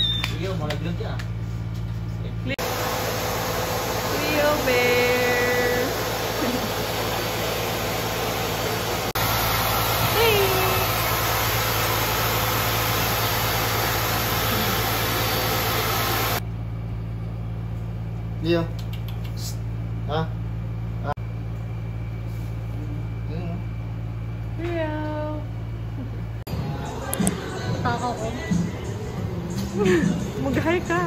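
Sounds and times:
dryer blowing air with motor hum: 0.0s - 16.4s, 20.9s - 26.4s, 27.0s - 31.0s.

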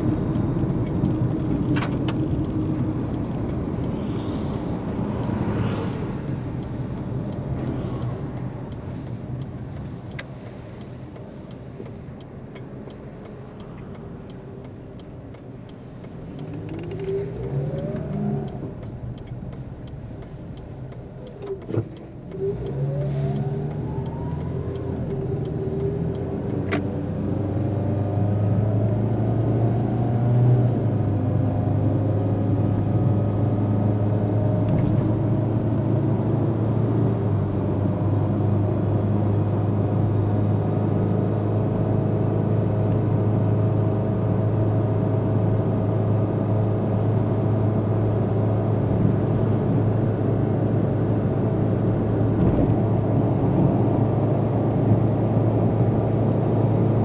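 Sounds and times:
car engine accelerating: 0.0s - 57.0s
tyre road noise: 0.0s - 57.0s.

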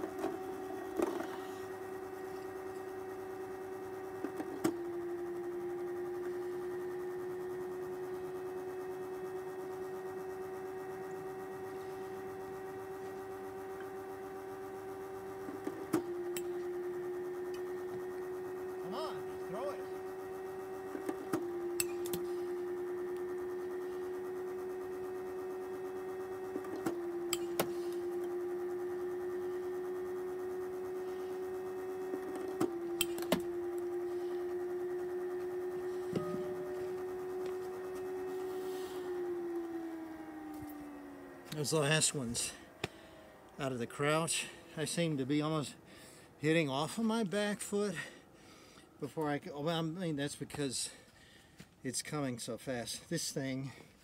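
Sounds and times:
pitching machine motor hum: 0.0s - 54.0s
pitching machine firing click: 32.3s - 33.5s.

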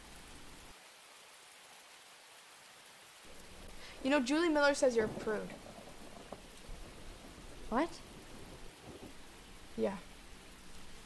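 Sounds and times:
recording hiss: 0.0s - 11.0s
low hum: 3.3s - 11.0s.

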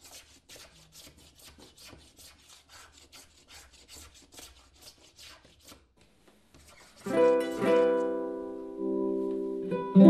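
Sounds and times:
filing wood scratchy strokes: 0.0s - 5.9s, 6.5s - 8.1s.

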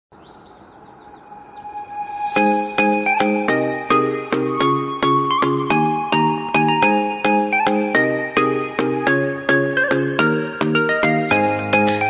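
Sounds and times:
high bird-like chirps: 0.2s - 4.4s.

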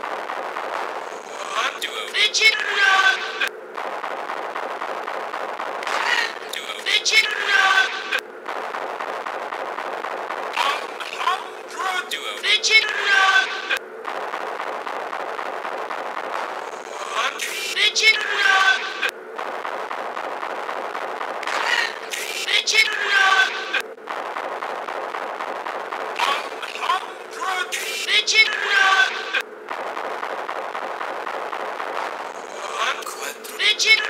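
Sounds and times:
dense crackly noise: 0.0s - 34.0s
sped-up cartoon voice: 1.2s - 3.5s, 5.9s - 8.2s, 10.6s - 13.8s, 16.8s - 19.1s, 21.5s - 23.8s, 26.2s - 29.4s, 32.4s - 34.0s.

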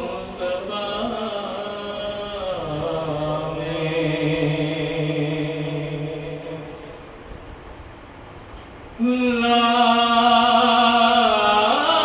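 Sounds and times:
man chanting a devotional song: 0.0s - 7.0s, 9.0s - 12.0s.

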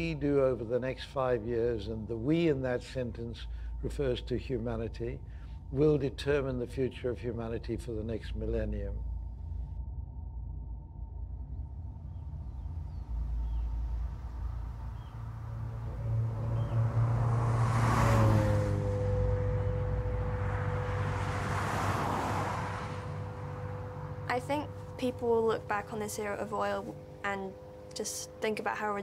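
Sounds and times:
low sustained drone: 0.0s - 29.0s
rushes of noise: 9.0s - 25.0s
steady held note: 18.2s - 21.6s.

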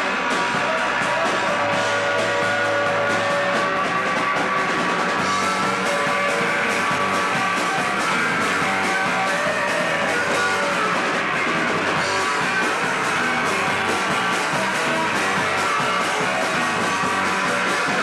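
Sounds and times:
drum kit with cymbal hits: 0.0s - 18.0s
electric guitars: 0.0s - 18.0s.

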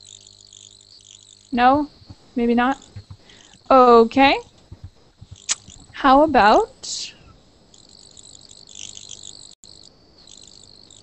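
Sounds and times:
faint high-pitched chirring: 0.0s - 11.0s
low background hiss: 0.0s - 11.0s.

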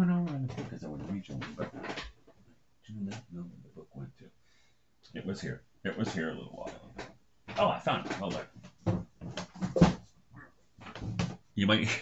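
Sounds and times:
books knocking and shuffling: 6.0s - 10.2s, 10.8s - 11.5s.

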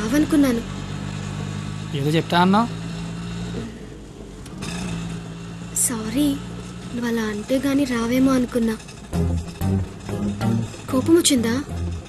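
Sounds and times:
car engine idling: 5.2s - 12.0s.

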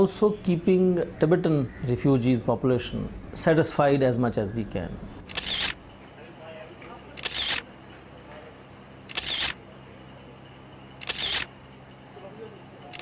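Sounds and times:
short noisy bursts: 5.3s - 5.8s, 7.2s - 7.6s, 9.1s - 9.6s, 11.0s - 11.5s.

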